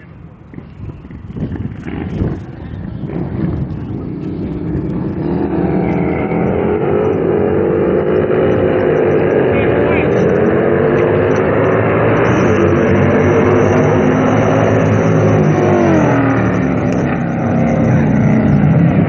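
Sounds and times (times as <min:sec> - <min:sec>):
motorcycles racing at full throttle: 0:00.0 - 0:19.0.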